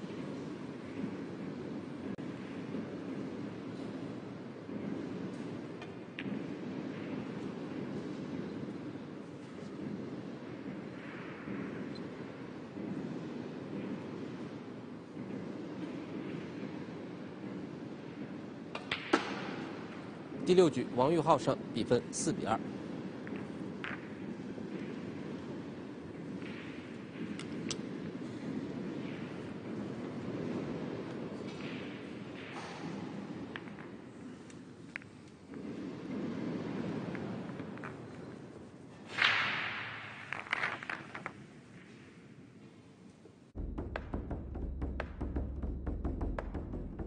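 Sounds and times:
pool balls clicking: 21.7s - 42.0s, 43.6s - 47.0s
cue tip striking ball: 43.6s - 47.0s
hall hum: 43.6s - 47.0s
low rumbling: 43.6s - 47.0s.

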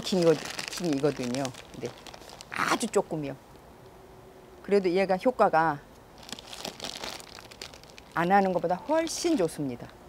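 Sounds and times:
plastic bag of pellets crinkling: 0.0s - 3.0s, 6.2s - 9.4s.

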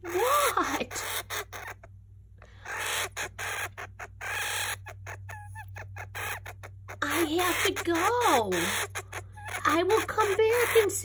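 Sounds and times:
hamster squeaking: 0.0s - 1.9s, 2.7s - 11.0s
hamster squawking: 0.0s - 2.0s, 2.6s - 11.0s.

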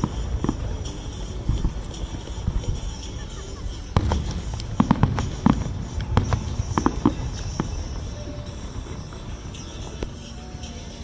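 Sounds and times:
fireworks bangs: 0.0s - 10.3s.

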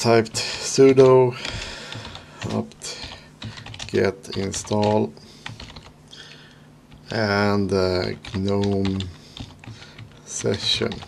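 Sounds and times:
computer keyboard keystrokes: 0.4s - 5.9s, 8.1s - 11.0s.

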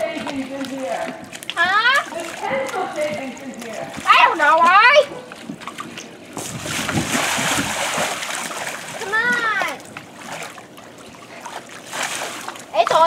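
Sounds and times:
pool water splashing: 0.0s - 13.0s.

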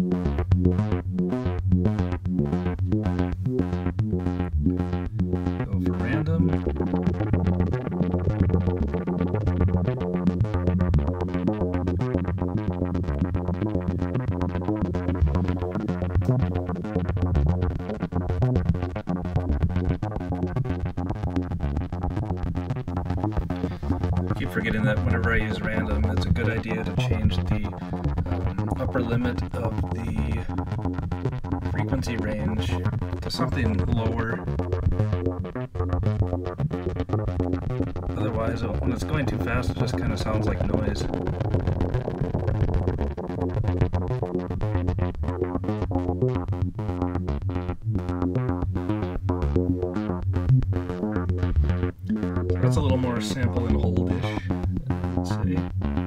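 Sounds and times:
synthesizer flickering low note: 0.0s - 56.0s.

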